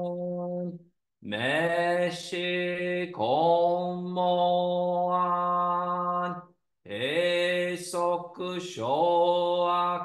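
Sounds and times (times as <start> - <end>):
man chanting on one pitch: 0.0 - 10.0.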